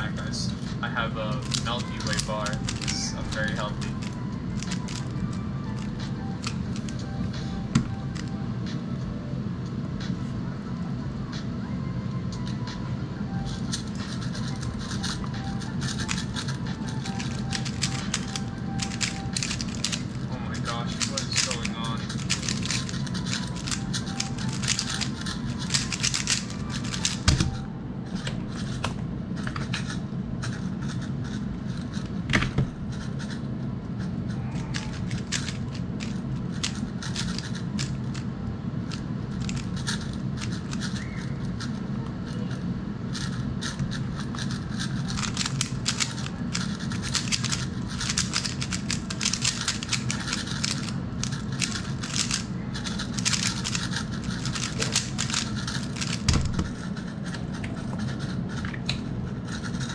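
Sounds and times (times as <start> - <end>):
plastic puzzle cube clicking: 1.4 - 7.2, 13.6 - 20.3, 20.9 - 29.0, 34.6 - 38.2, 38.9 - 41.7, 44.4 - 59.0.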